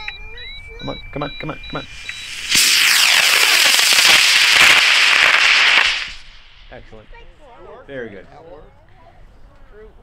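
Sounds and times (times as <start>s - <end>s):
model rocket motor burning: 1.9s - 6.8s.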